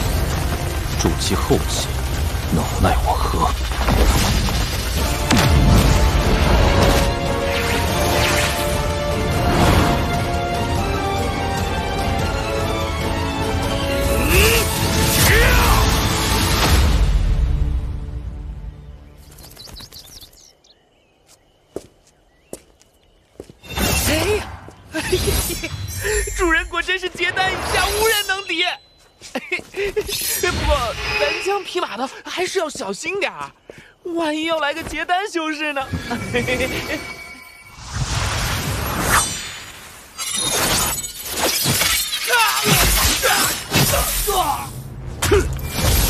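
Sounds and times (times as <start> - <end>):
crackling shattering impacts: 0.0 - 8.8
birds chirping: 18.1 - 30.5, 31.1 - 36.9.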